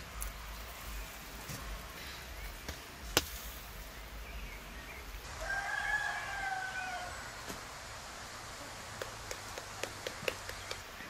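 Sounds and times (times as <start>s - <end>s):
rooster crowing: 5.3s - 7.3s.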